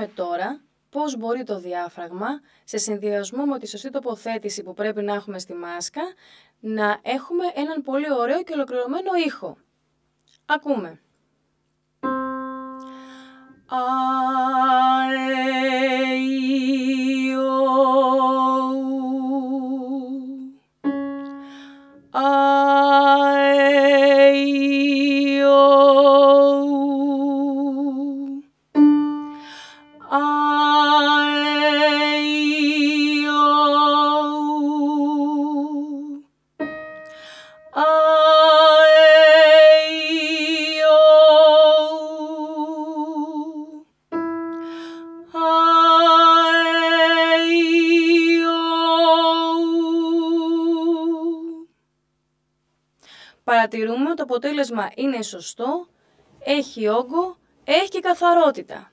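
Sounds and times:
woman singing sustained notes: 21.3 - 28.5, 29.2 - 43.9, 44.5 - 51.7.

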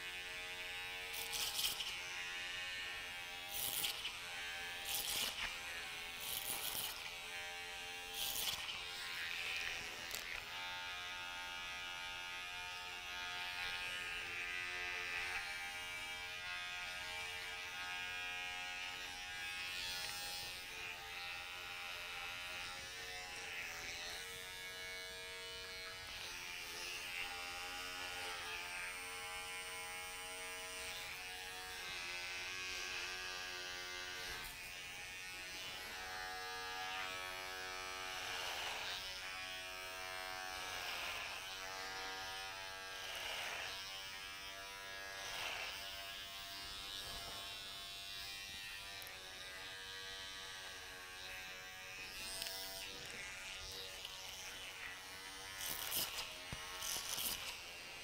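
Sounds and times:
electric hair clipper buzzing: 0.0 - 58.0.

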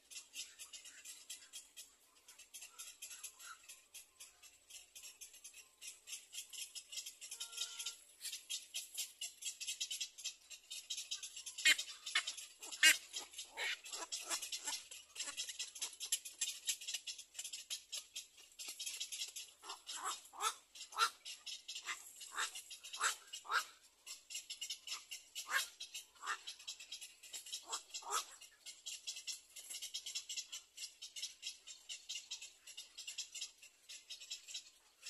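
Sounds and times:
cormorant short calls: 7.3 - 8.0, 11.6 - 15.5, 19.6 - 23.8, 24.9 - 26.6, 27.6 - 28.4.

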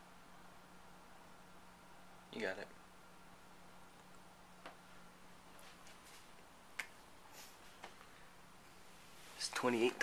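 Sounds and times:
faint rustling: 4.6 - 10.0.

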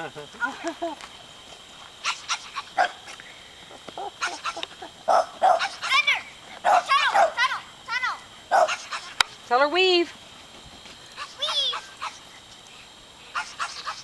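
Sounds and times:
people laughing: 0.0 - 1.1, 3.7 - 5.1
dog barking excitedly: 2.0 - 3.0, 4.1 - 9.2, 11.2 - 12.2.

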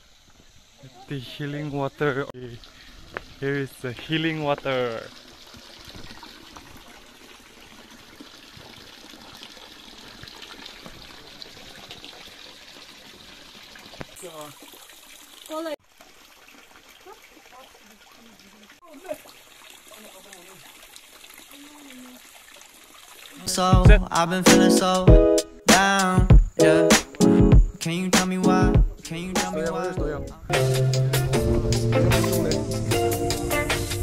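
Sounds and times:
water trickling onto stones: 1.0 - 24.4
voices: 28.2 - 30.6.

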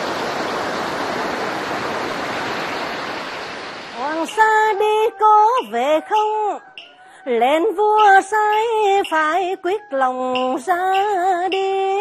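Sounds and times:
surf breaking on beach: 0.0 - 6.3.

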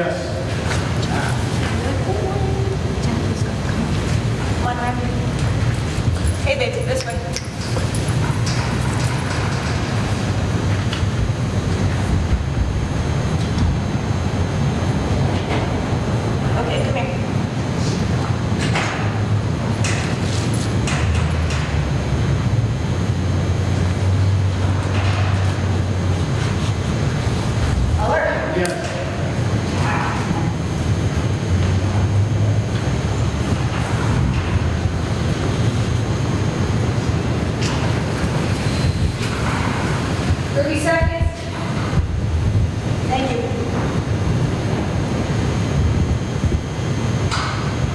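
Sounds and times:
steady low rumble: 0.0 - 47.9.

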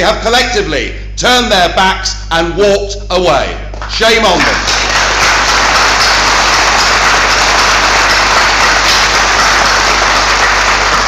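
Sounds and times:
large audience applauding: 4.4 - 11.0.

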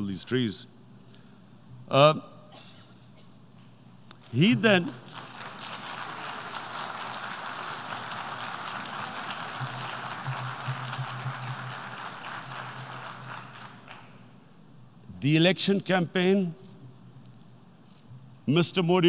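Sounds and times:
audience applauding: 4.3 - 14.3.

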